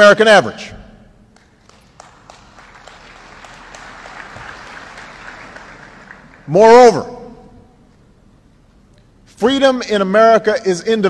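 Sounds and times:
audience applauding: 1.4 - 6.6.

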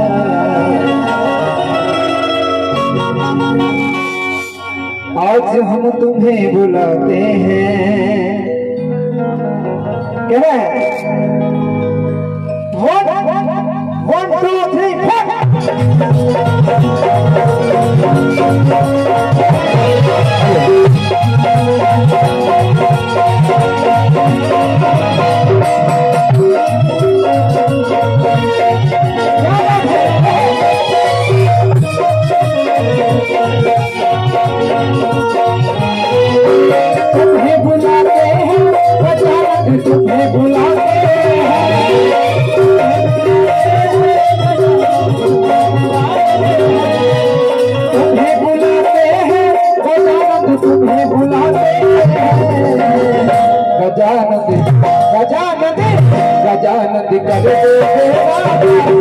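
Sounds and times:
keyboard melody: 0.0 - 59.0
hand drums: 15.2 - 53.6
repeating bass line: 15.6 - 49.4.

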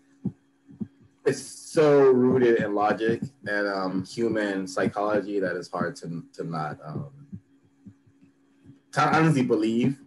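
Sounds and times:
faint low hum: 0.0 - 10.0
soft low thumps: 0.2 - 10.0.

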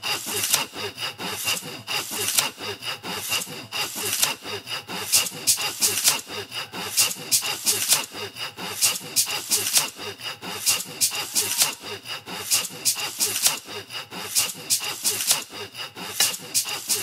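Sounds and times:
rhythmic scraping strokes: 0.0 - 17.0.

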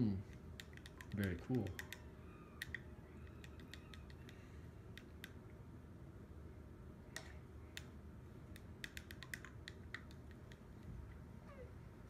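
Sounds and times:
faint falling squeak: 2.0 - 4.3.

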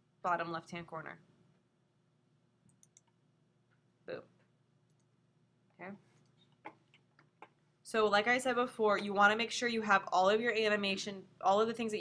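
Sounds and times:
computer mouse clicks: 2.6 - 3.2, 4.8 - 5.1.

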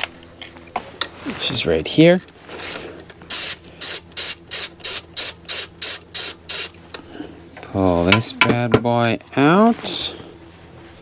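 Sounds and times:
ratchet wrench ratcheting: 2.6 - 6.8.

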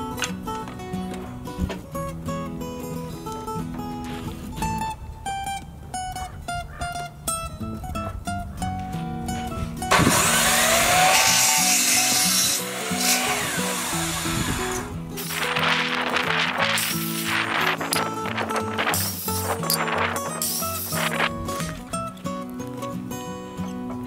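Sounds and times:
acoustic guitar music: 0.0 - 24.0
miter saw cutting wood: 9.9 - 21.3.

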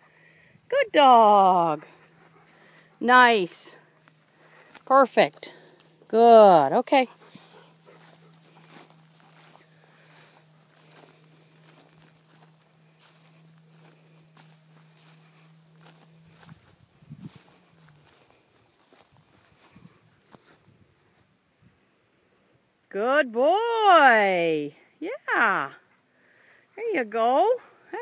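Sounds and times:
low steady hum: 0.0 - 21.8
insects trilling: 0.0 - 28.0
soft steps and rustles in grass: 1.8 - 6.0, 7.0 - 21.5.

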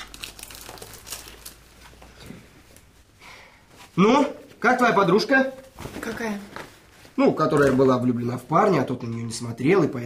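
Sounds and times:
packaging crinkling: 0.0 - 2.1.

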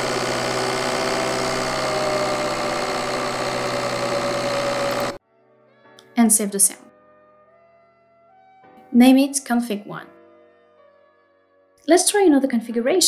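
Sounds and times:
engine rush: 0.0 - 5.2
turbocharger whistling whine: 0.0 - 5.2.

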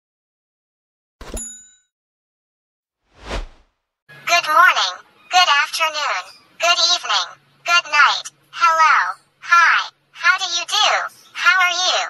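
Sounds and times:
notification bell ding: 1.2 - 1.9.

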